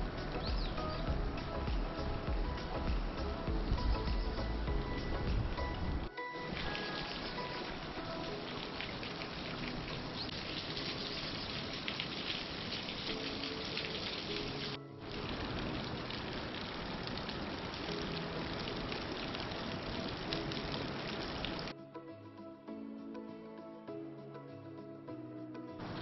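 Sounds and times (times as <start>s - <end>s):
patter of falling water drops: 0.0s - 21.7s.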